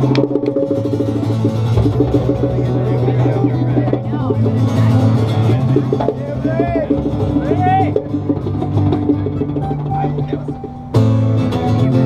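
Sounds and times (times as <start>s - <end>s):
acoustic guitars picking notes: 0.0s - 12.0s.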